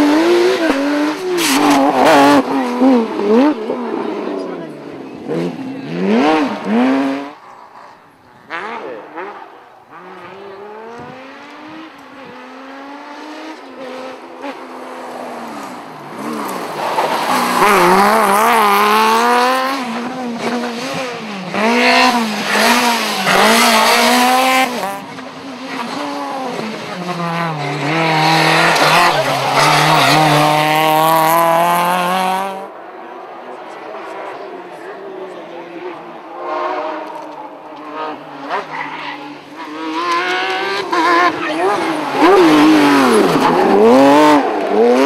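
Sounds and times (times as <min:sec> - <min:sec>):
rally car engines revving: 0:00.0 - 0:45.0.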